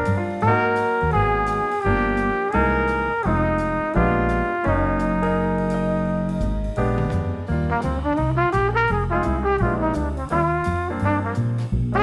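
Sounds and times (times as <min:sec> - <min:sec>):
upbeat jazzy tune with brass: 0:00.0 - 0:12.0.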